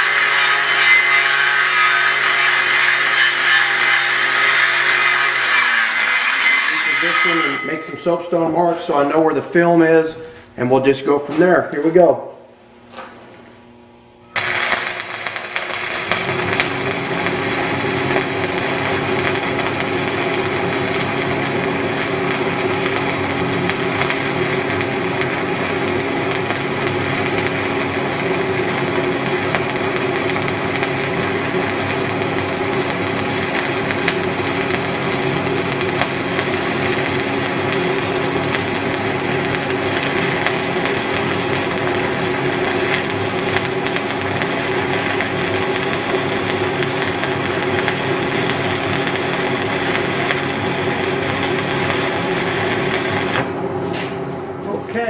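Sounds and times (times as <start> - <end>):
welding arc sizzling: 0.0 - 11.7, 12.6 - 54.1
steady low tone: 3.7 - 10.8.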